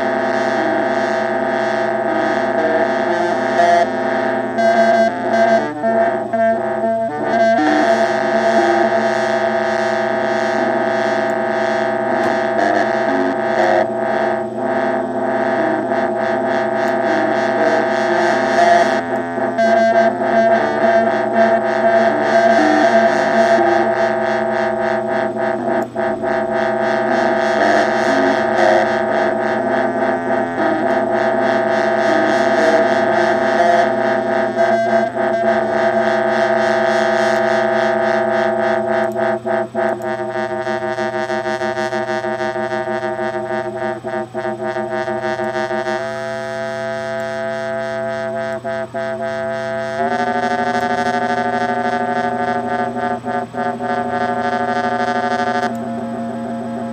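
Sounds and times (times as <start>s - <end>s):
pulsing synthesizer drone: 0.0s - 56.9s.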